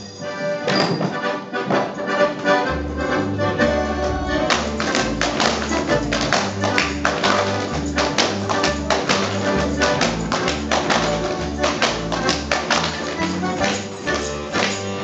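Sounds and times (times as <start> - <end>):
folk music with bass line: 0.0 - 15.0
dancers slapping and stamping: 4.4 - 15.0.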